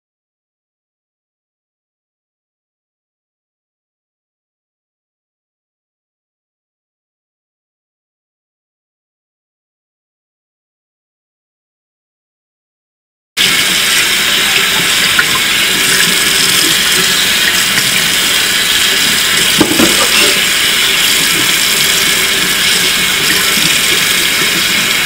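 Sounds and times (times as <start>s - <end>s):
tap water running into sink: 13.4s - 25.0s.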